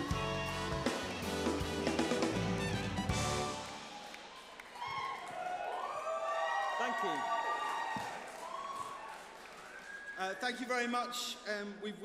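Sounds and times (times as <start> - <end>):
large hall room noise: 0.0 - 12.0.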